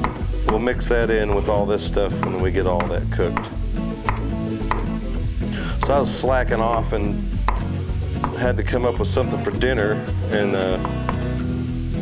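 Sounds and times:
knife chopping on wooden board: 0.0 - 0.6, 2.1 - 5.0, 7.4 - 8.5
meat sizzling in a skillet: 0.0 - 12.0.

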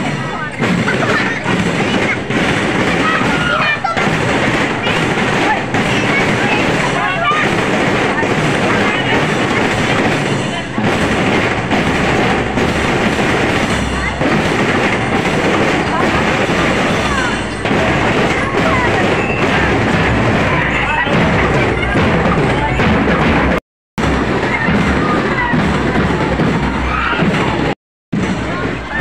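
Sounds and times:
marching drum and lyre band: 0.0 - 29.0
snare and bass drums: 0.0 - 29.0
voices: 0.0 - 29.0
marching glockenspiels: 13.5 - 22.9.

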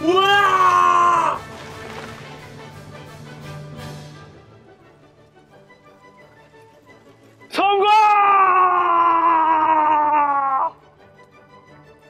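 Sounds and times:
man's long drawn-out shout: 0.0 - 1.4, 7.5 - 10.8
faint background music: 0.0 - 12.0.

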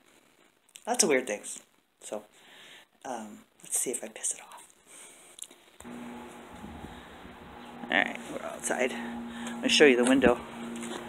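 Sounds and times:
steady low hum: 5.8 - 11.0
wind rumble on microphone: 6.4 - 7.9
person speaking: 7.7 - 11.0.

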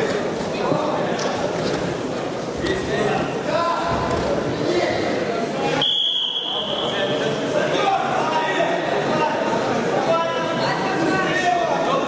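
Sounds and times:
crowd voices and shouts: 0.0 - 12.0
high whistle blast: 5.8 - 6.9.

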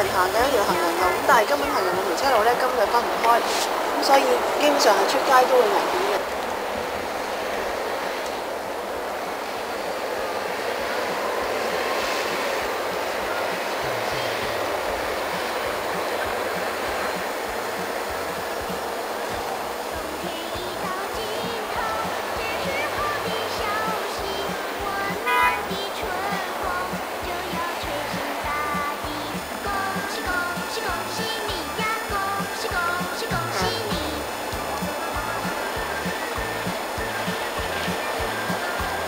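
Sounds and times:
faint music: 0.0 - 39.0
steady rushing noise: 0.0 - 39.0
wavering voice-like tones: 19.9 - 39.0.

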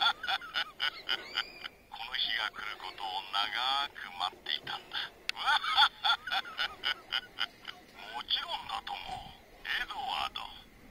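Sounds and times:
man laughing: 0.0 - 3.0, 4.4 - 8.6.

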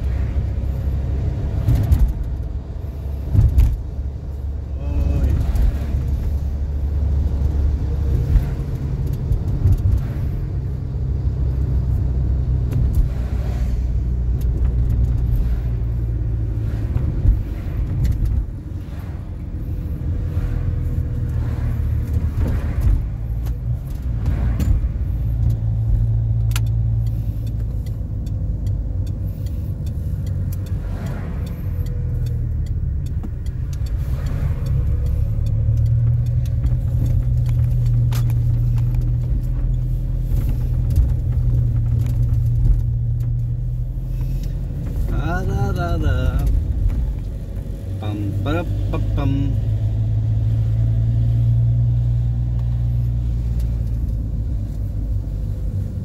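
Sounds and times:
car engine and road noise: 0.0 - 56.0.

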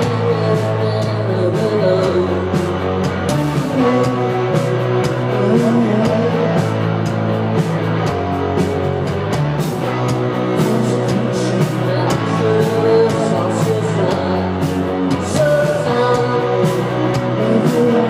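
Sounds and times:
bass guitar: 0.0 - 18.0
distorted electric guitar: 0.0 - 18.0
drums with cymbal hits: 0.0 - 18.0.

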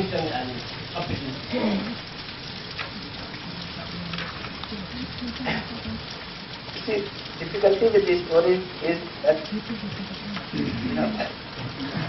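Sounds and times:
background hiss: 0.0 - 12.0
man's voice: 6.8 - 11.4.

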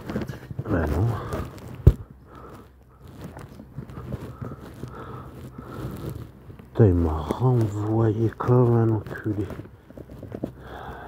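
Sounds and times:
phone handling rustles and clicks: 0.0 - 6.7.

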